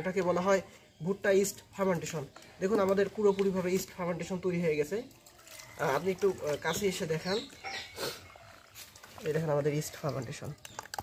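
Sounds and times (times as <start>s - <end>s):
wet squelching of kneaded mash: 0.0s - 11.0s.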